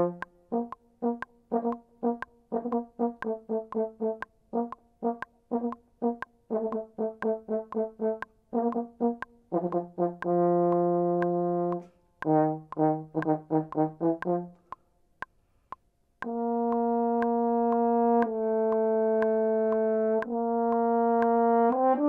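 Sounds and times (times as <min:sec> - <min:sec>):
french horn playing: 0:00.0 - 0:14.6, 0:16.3 - 0:22.0
steady faint clicks: 0:00.0 - 0:22.0.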